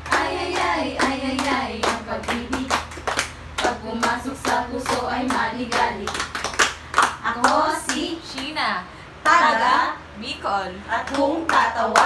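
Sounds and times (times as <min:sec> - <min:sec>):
rhythmic hand clapping: 0:00.0 - 0:08.5, 0:11.0 - 0:12.0
women singing together: 0:00.0 - 0:12.0.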